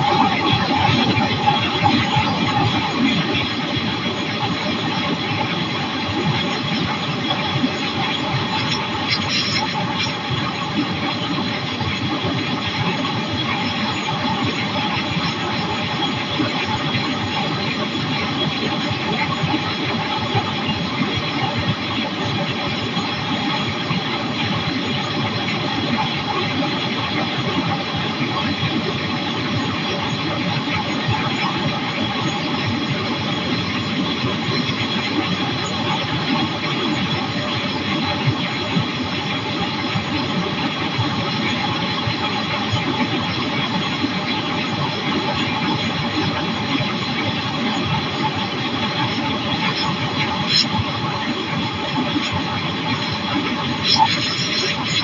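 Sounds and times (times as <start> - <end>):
light aircraft engine and propeller: 0.0 - 55.0
wind noise over microphone: 0.0 - 55.0.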